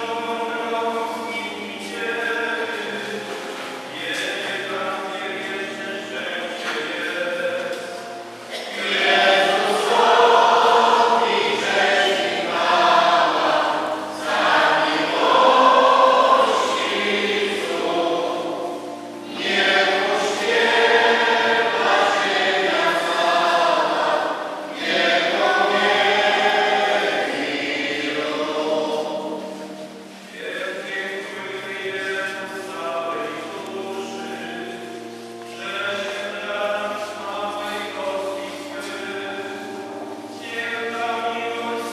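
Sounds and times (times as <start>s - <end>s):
choir singing a hymn: 0.0s - 41.9s.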